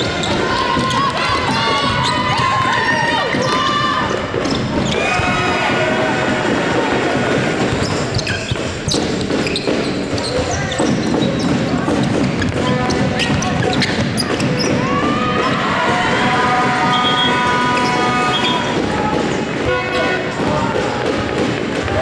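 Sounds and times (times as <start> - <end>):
basketball bouncing on wooden court: 0.0 - 5.4, 6.2 - 22.0
voices: 0.0 - 8.6, 9.5 - 22.0
knocks and thuds of play: 0.0 - 22.0.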